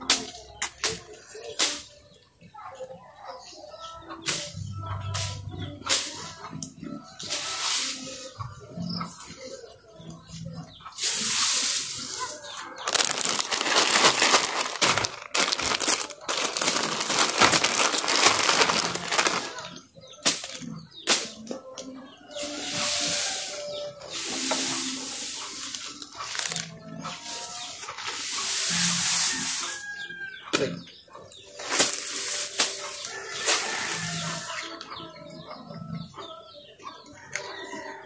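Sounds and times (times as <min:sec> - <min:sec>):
dry grass rustling and crackling: 0:11.1 - 0:20.6, 0:22.4 - 0:30.0, 0:31.4 - 0:34.8
stems snapping: 0:12.9 - 0:20.6, 0:31.6 - 0:32.8.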